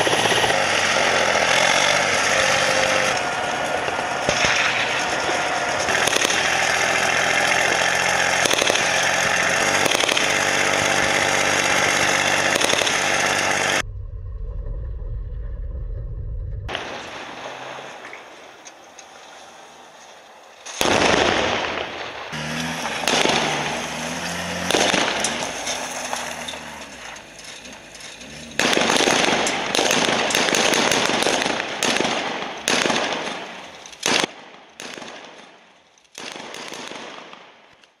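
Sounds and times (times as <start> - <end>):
sharp bangs: 0.0 - 13.9, 20.6 - 37.6
vehicle engine revving: 0.0 - 34.0.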